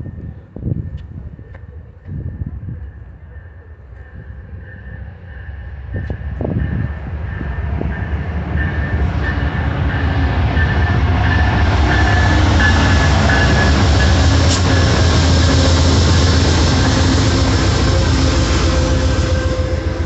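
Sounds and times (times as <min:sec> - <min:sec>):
passenger train passing: 0:00.0 - 0:20.0.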